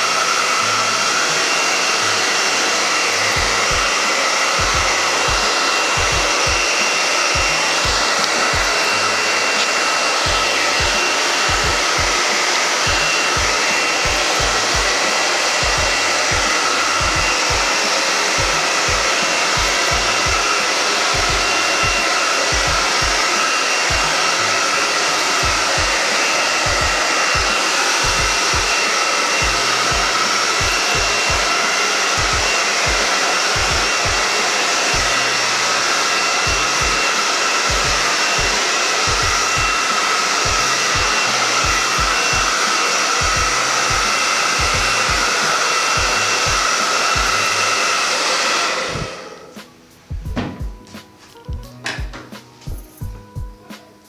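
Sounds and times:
hair dryer blowing: 0:00.0 - 0:53.2.

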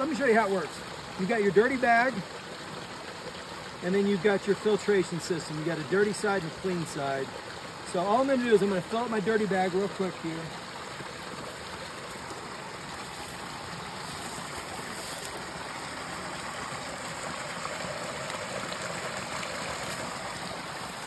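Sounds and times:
creek water rushing: 0:00.0 - 0:21.0.

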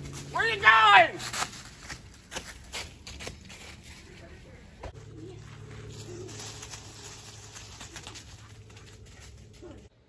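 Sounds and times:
steady low hum: 0:01.4 - 0:10.0
dog running through dry leaves: 0:05.4 - 0:09.9.

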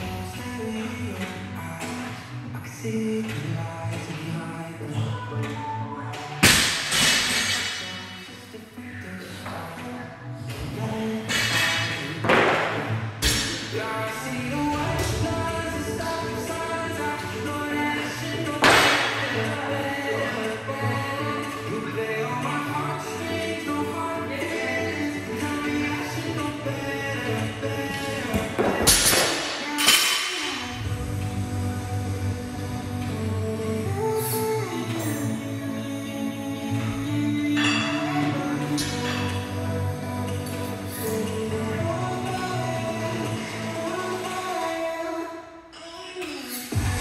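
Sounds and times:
background music: 0:00.0 - 0:47.0.

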